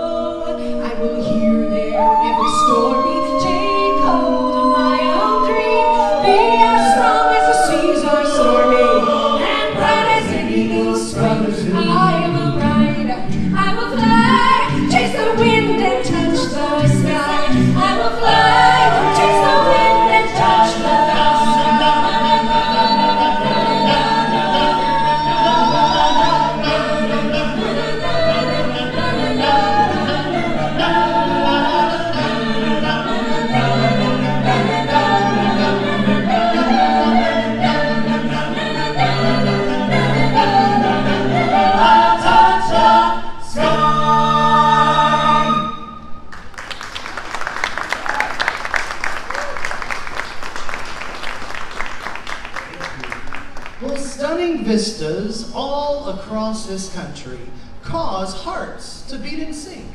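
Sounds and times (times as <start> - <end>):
vocal ensemble singing in harmony: 0.0 - 46.3
audience applause: 46.3 - 54.1.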